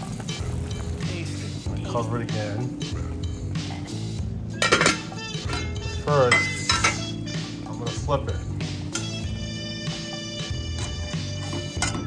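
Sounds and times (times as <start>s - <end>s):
background music: 0.0s - 12.0s
metal cookware clinking: 3.8s - 9.4s, 10.0s - 12.0s.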